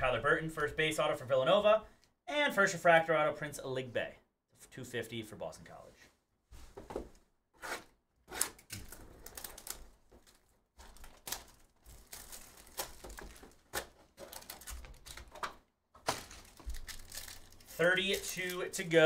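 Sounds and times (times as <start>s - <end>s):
foil card pack rustling: 8.4s - 19.0s.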